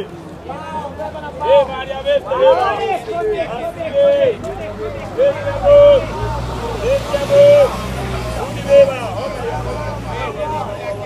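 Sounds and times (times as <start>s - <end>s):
hawker shouting sales calls: 0.0s - 11.0s
street babble: 0.0s - 11.0s
vehicle engine hum: 0.0s - 11.0s.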